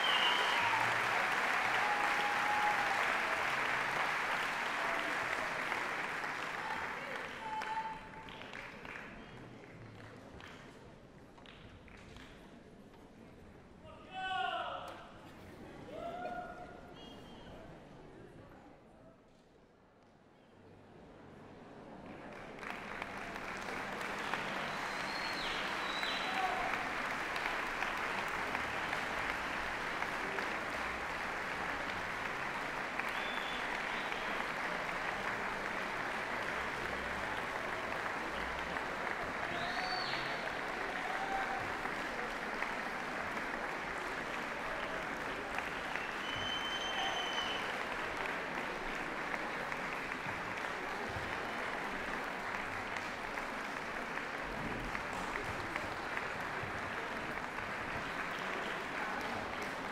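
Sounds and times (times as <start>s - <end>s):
high whistles: 0.0s - 0.7s, 46.0s - 47.7s
audience applauding: 0.0s - 10.5s, 22.2s - 59.9s.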